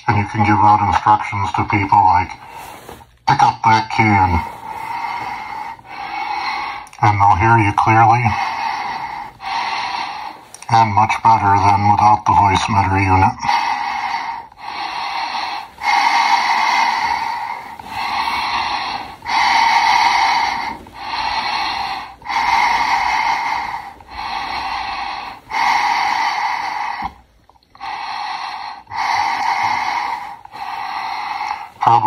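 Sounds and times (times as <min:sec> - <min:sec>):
amplified breathing through gas mask: 0:01.7 - 0:03.2, 0:03.8 - 0:32.0.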